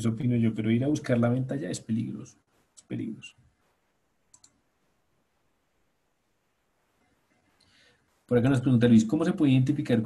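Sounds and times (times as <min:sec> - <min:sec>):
mouse double-click: 0:04.3 - 0:04.6.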